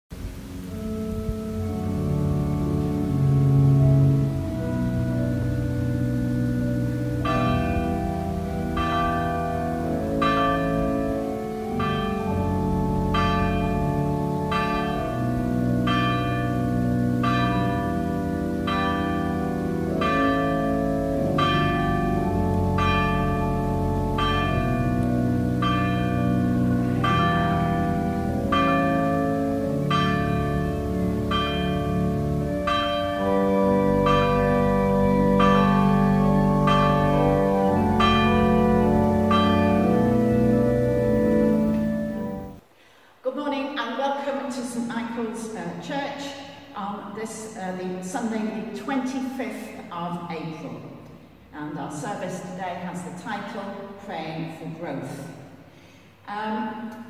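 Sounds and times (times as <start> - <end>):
sustained organ chords: 0.2 - 42.6
church bells struck: 0.6 - 42.6.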